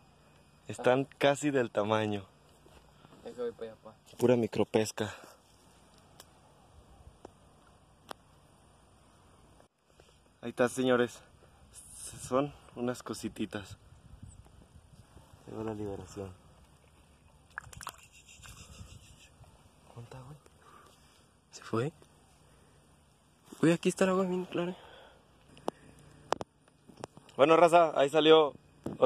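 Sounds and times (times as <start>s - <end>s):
shallow water splashing and trickling: 16.7s - 18.2s.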